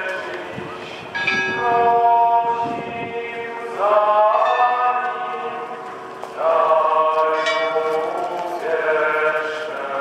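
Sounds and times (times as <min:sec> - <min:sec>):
church bells tolling: 0:01.1 - 0:02.6, 0:04.3 - 0:06.1, 0:07.1 - 0:08.6.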